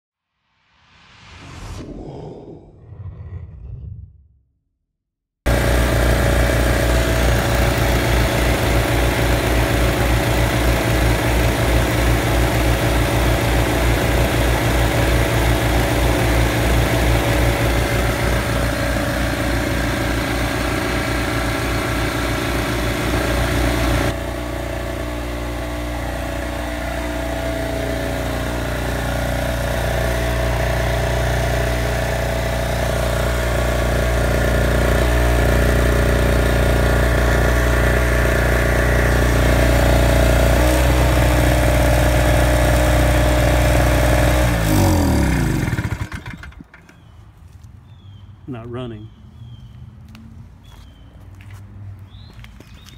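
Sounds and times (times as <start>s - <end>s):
small generator engine running: 5.5s - 47.3s.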